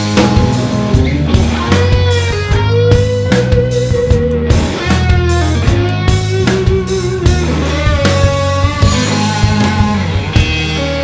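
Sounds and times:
bass: 0.0 - 11.0
drums: 0.0 - 11.0
electric guitar lead: 0.0 - 11.0.

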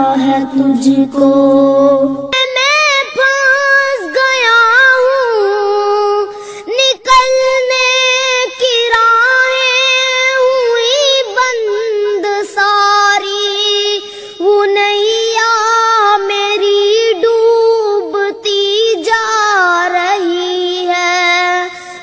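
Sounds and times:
child singing solo: 0.0 - 22.0.

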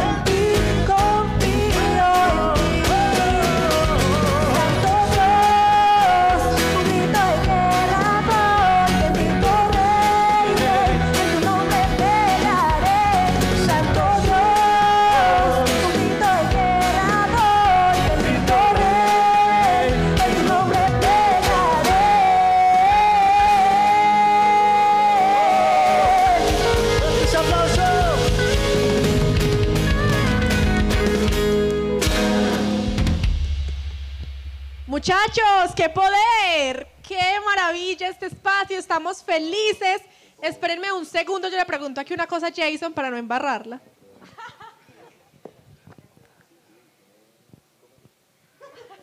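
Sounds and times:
worship band playing: 0.0 - 37.0
singer holding long high note: 17.5 - 29.2.

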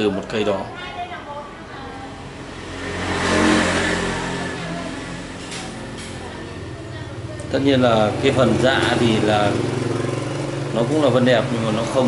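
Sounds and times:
vehicle engine passing: 1.2 - 12.0.

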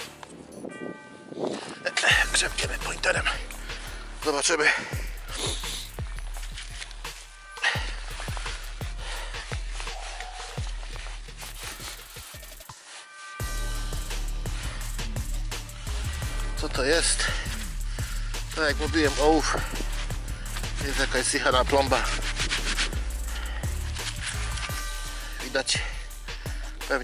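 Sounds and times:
spade digging frozen soil: 18.5 - 25.6.

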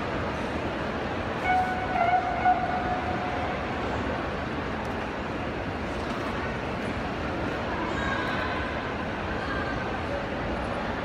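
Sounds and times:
sports hall crowd noise: 0.0 - 11.0
steady high-pitched tone: 1.4 - 4.4.

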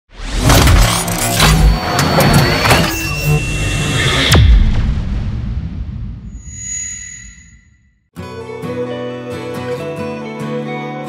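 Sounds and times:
lower beep: 1.2 - 4.5, 6.3 - 8.0
high beep: 1.3 - 4.4, 6.3 - 8.0.

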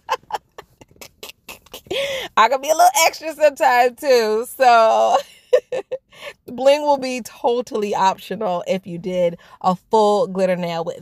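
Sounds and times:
woman laughing: 0.0 - 2.4, 4.9 - 6.4.

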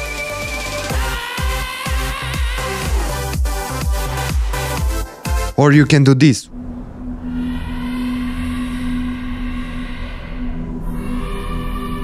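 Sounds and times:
low ambient drone: 6.5 - 12.0
low rumble: 6.5 - 12.0.

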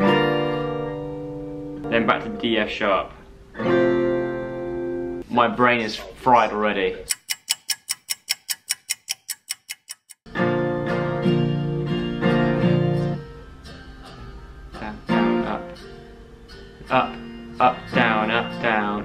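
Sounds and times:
acoustic guitar strumming chords: 0.0 - 5.2, 10.3 - 19.0
fast sharp ticks: 7.0 - 10.2.

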